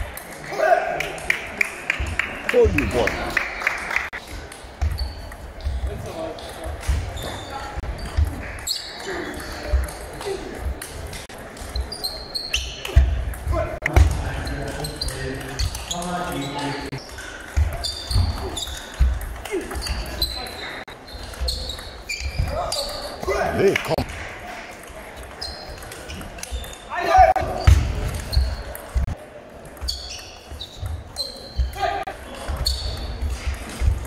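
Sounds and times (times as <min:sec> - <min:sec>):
shoe squeaks on wooden floor: 0:04.8 - 0:06.0, 0:06.9 - 0:09.8, 0:11.7 - 0:13.2, 0:14.4 - 0:23.1, 0:25.4 - 0:29.1, 0:29.8 - 0:33.3.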